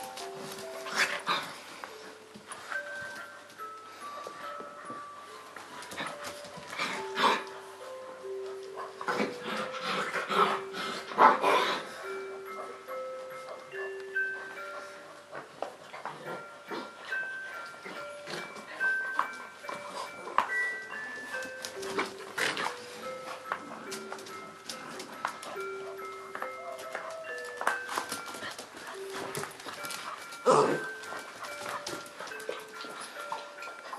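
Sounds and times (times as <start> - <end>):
chime-like melody: 0.0 - 33.9
puppies playing: 0.0 - 33.9
soft background music: 0.0 - 33.9.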